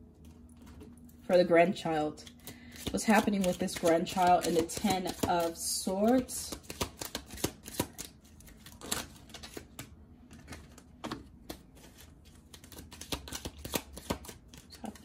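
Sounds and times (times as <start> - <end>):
cards being shuffled: 2.2 - 15.0.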